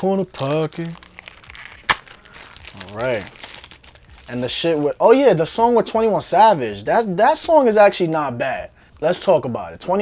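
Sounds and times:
plastic case crinkling: 0:00.0 - 0:04.6.

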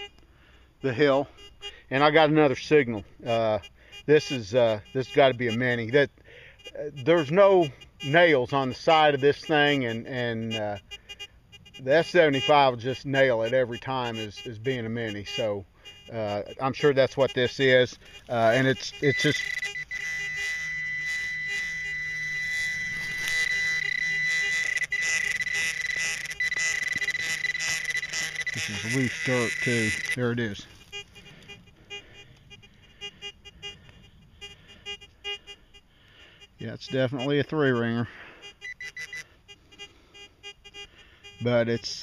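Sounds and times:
metal detector beeping: 0:00.0 - 0:00.2, 0:00.8 - 0:42.0
dirt scraping: 0:16.1 - 0:31.9
high-pitched electronic buzz: 0:17.5 - 0:35.7, 0:38.4 - 0:42.0.

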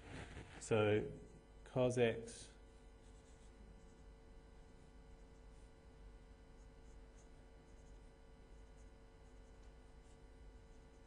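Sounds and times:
pen scratching on paper: 0:03.0 - 0:04.1, 0:06.6 - 0:11.0.

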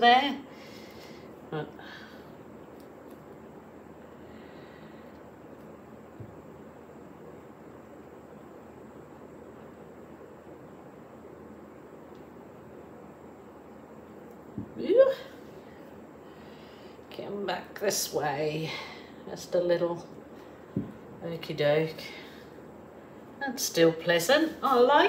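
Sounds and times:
room-tone hiss: 0:00.0 - 0:25.0
soft knock: 0:20.8 - 0:21.0.

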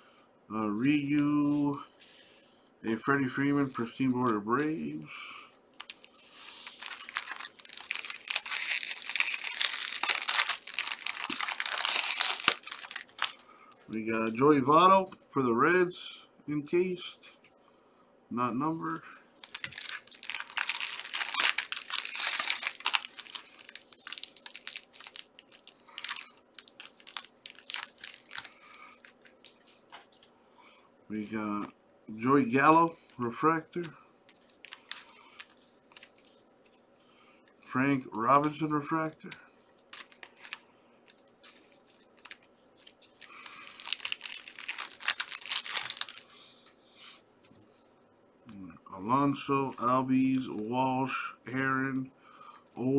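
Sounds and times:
foil wrapper crinkling: 0:05.8 - 0:13.5, 0:19.4 - 0:30.3, 0:32.7 - 0:36.4, 0:39.8 - 0:46.6.

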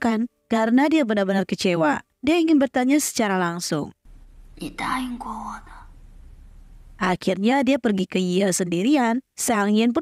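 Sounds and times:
faint low hum: 0:04.1 - 0:07.2.

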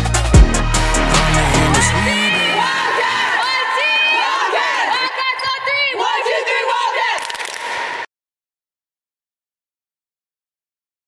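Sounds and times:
girls shouting a chant: 0:01.0 - 0:07.2.

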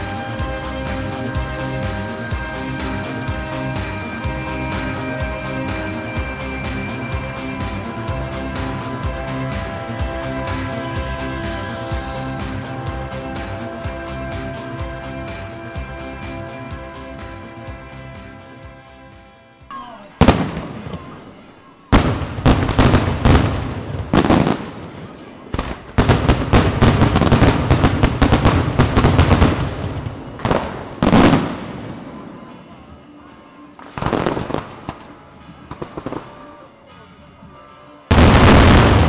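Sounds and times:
fireworks bangs: 0:20.1 - 0:32.9, 0:33.8 - 0:36.7, 0:38.1 - 0:39.0.

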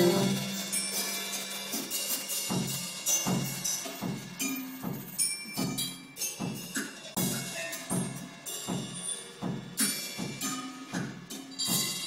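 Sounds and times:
live band held chord: 0:00.0 - 0:00.8
scattered drum hits: 0:00.0 - 0:00.9, 0:01.7 - 0:12.0.

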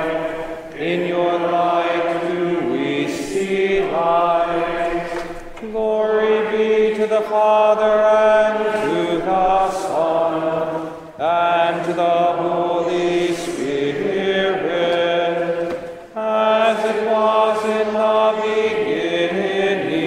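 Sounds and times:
liturgical chant singing: 0:00.0 - 0:20.0.

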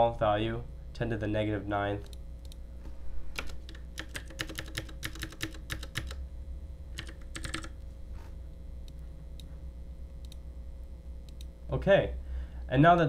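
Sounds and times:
computer keyboard typing: 0:03.4 - 0:06.2, 0:07.0 - 0:07.8.

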